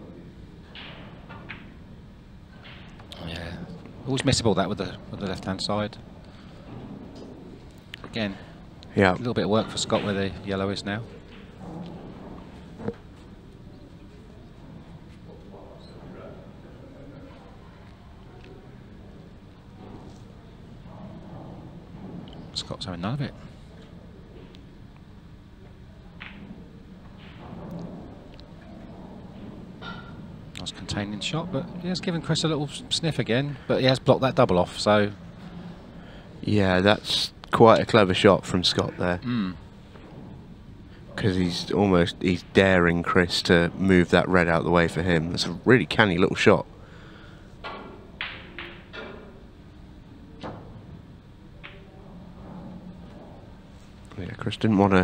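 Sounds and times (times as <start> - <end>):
low steady hall hum: 0.0 - 55.0
pool balls clicking: 0.6 - 8.2, 8.8 - 16.2, 17.8 - 39.0, 47.2 - 55.0
cue striking ball: 26.2 - 30.3, 47.6 - 49.4, 51.6 - 53.1
pool balls knocking together: 26.2 - 32.6, 47.6 - 49.5, 50.3 - 53.5.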